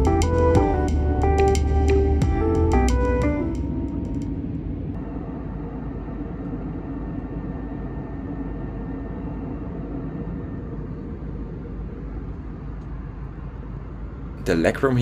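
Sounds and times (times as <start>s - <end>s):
airplane cabin engine rumble: 0.0s - 15.0s.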